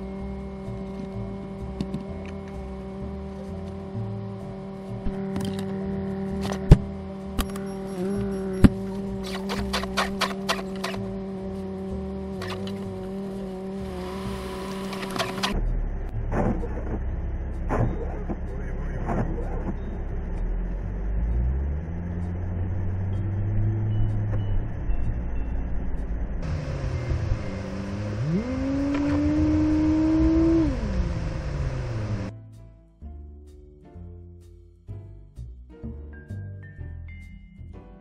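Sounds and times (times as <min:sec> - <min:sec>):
car engine revving: 0:00.0 - 0:32.3
road noise inside car: 0:00.0 - 0:32.3.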